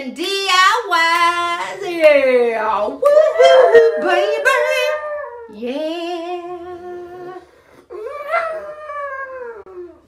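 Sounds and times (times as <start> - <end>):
dog howling: 3.1 - 5.6.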